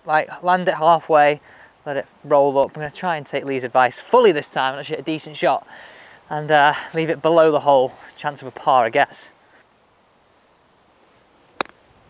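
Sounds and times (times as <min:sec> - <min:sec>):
golf club striking ball: 0:11.6 - 0:11.8.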